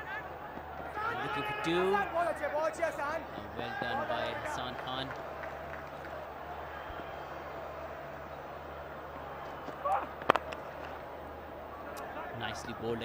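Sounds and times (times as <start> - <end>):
stadium hum: 0.0 - 13.0
cricket bat striking ball: 9.5 - 11.0.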